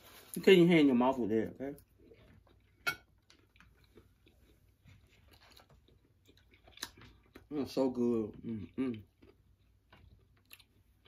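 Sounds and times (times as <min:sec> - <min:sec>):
people chewing: 0:01.7 - 0:11.0.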